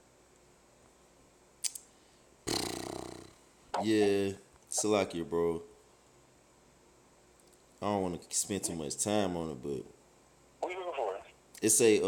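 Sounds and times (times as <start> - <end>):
man speaking: 3.8 - 5.6, 10.6 - 12.0.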